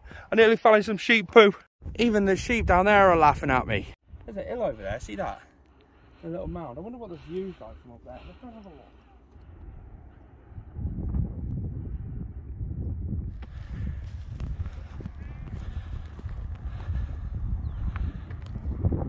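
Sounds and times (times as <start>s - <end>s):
wind buffeting microphone: 1.8s - 5.4s, 9.4s - 19.0s
footsteps on grass and rock: 13.4s - 17.2s.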